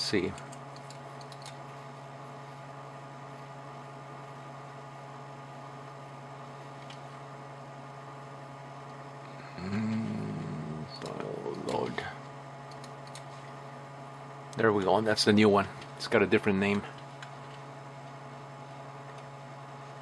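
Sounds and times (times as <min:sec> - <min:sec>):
low electrical hum: 0:00.0 - 0:20.0
man humming: 0:09.3 - 0:12.0
man muttering: 0:09.4 - 0:12.0.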